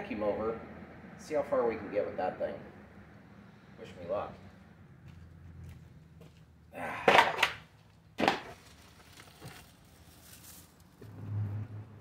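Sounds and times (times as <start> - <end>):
plastic bag rustling: 8.5 - 10.9.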